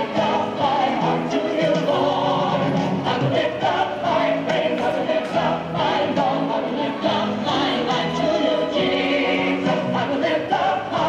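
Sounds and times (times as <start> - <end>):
choir singing with music: 0.0 - 11.0.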